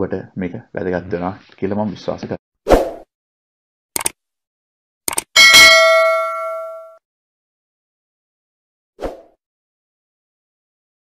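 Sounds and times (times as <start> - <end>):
quick clicks: 4.0 - 4.2, 5.1 - 5.3
bright bell chime: 5.4 - 7.0.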